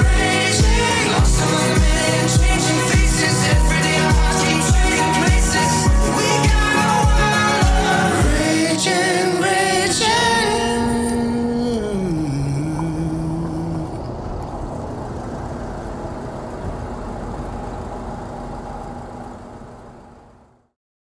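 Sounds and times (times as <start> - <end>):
music notes gliding down: 0.0 - 17.7
car engine running: 0.0 - 20.7.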